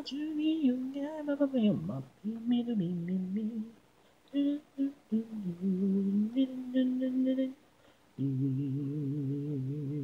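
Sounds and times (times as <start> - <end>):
person humming: 0.0 - 7.6, 8.2 - 10.0.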